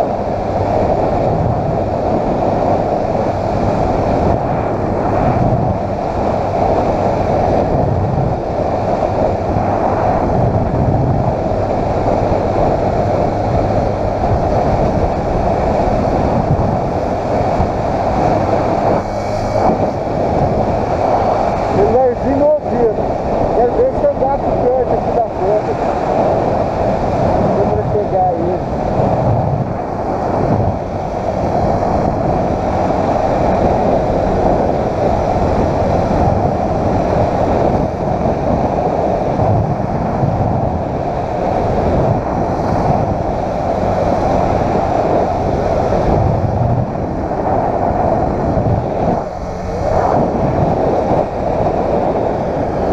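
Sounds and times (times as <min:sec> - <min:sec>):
road noise: 0:00.0 - 0:52.9
wind rush on microphone: 0:00.0 - 0:52.9
motorcycle engine: 0:08.3 - 0:22.2, 0:40.7 - 0:52.9.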